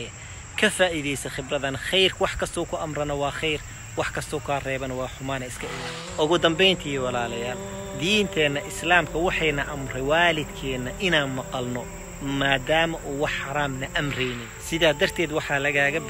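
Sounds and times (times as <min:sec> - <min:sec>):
crickets chirring: 0:00.0 - 0:16.0
man talking: 0:00.0 - 0:16.0.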